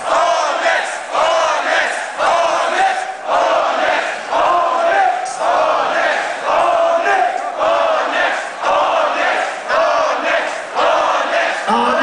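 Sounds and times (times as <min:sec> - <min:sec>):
crowd chanting in unison: 0:00.0 - 0:12.0.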